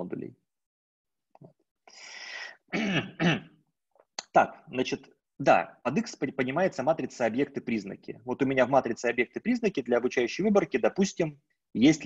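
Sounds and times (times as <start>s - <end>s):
man clearing his throat: 2.7s - 3.6s.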